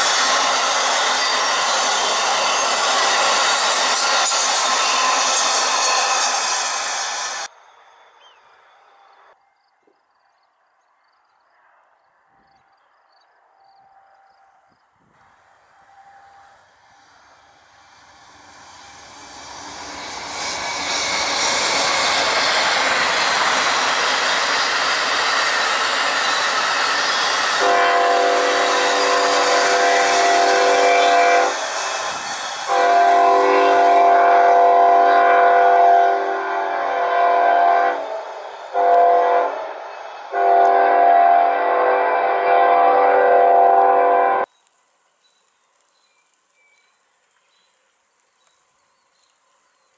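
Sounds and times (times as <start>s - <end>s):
train wheel and rail noise: 0.0s - 10.0s, 11.3s - 49.9s
train air horn blasts: 27.4s - 31.6s, 32.6s - 44.5s.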